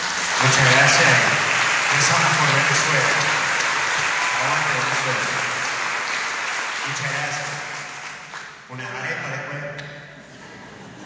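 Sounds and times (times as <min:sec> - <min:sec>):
congregation applauding: 0:00.0 - 0:09.0
man speaking into a microphone: 0:00.4 - 0:03.6, 0:04.2 - 0:05.6, 0:06.8 - 0:08.0, 0:08.7 - 0:10.0.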